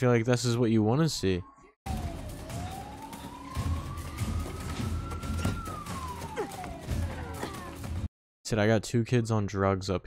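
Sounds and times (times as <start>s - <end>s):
police siren wailing: 1.9s - 8.1s.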